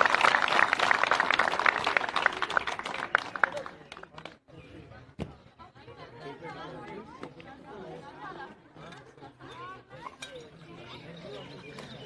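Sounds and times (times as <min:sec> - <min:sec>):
crowd applauding: 0:00.0 - 0:04.3.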